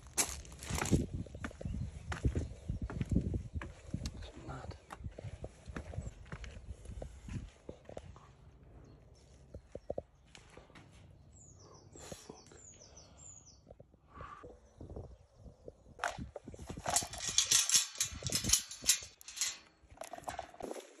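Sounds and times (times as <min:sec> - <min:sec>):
footsteps on concrete steps: 0:00.2 - 0:08.4.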